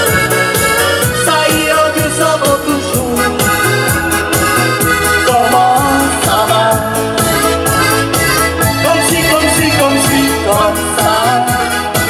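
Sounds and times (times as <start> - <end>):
keyboard playing organ chords: 0.0 - 12.0
steady drum beat: 0.0 - 12.0.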